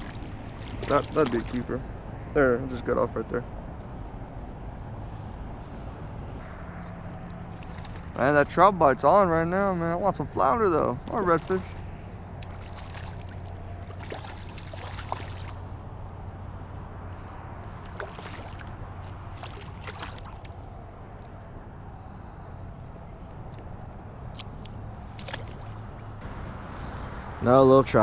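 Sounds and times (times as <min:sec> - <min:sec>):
fish splashing in water: 0:00.0 - 0:01.7, 0:07.1 - 0:08.5, 0:11.2 - 0:15.8, 0:17.7 - 0:21.2, 0:24.3 - 0:26.1
water sloshing: 0:00.0 - 0:02.2, 0:07.1 - 0:08.9, 0:10.4 - 0:16.0, 0:17.2 - 0:21.5, 0:22.9 - 0:27.0.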